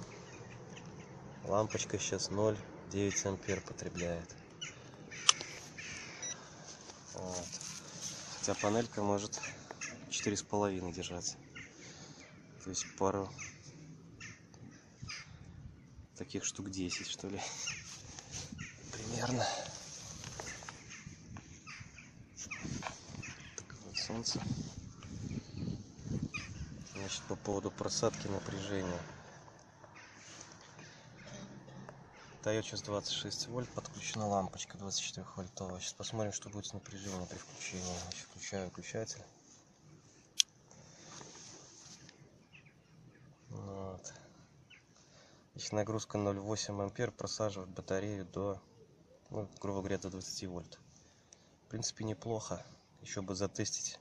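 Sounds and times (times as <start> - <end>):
low outdoor background noise: 0.0 - 54.0
faint bird calls: 3.0 - 10.5, 11.4 - 15.6, 16.8 - 32.5.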